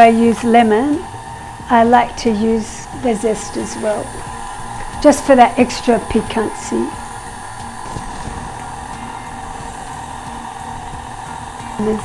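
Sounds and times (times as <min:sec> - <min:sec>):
stand mixer motor whining: 0:00.0 - 0:12.0.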